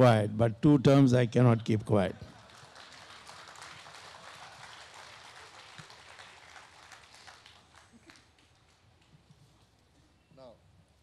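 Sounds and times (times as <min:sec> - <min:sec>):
audience applauding: 0:02.3 - 0:08.8.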